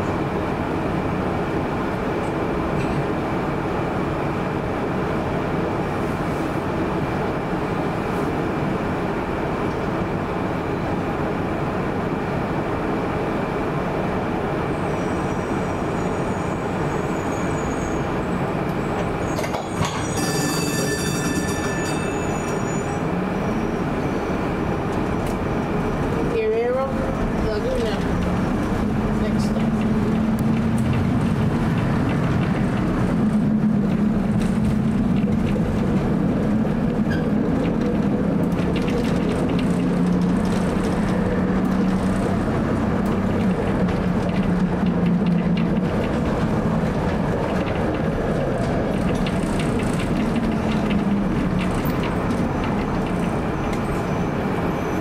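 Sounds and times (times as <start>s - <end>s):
streetcar equipment running: 0.0s - 55.0s
streetcar motor whine: 0.0s - 55.0s
brief high ringing: 20.1s - 22.8s.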